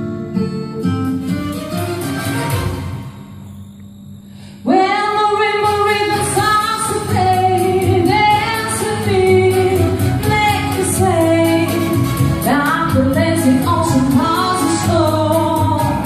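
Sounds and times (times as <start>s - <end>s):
backing track: 0.0s - 16.0s
woman singing into microphone: 4.6s - 16.0s.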